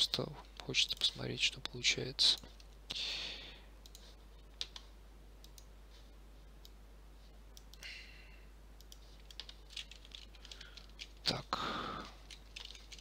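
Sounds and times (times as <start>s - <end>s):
mouse and keyboard clicks: 3.8s - 5.7s.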